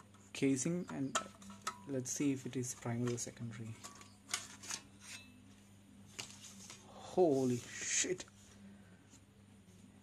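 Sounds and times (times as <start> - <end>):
faint handling sounds: 0.0 - 10.0
metal cover scraping: 1.0 - 5.4.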